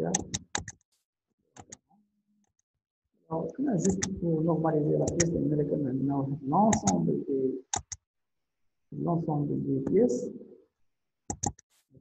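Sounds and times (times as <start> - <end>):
speech: 0.0 - 0.3, 3.3 - 7.6, 9.0 - 10.6.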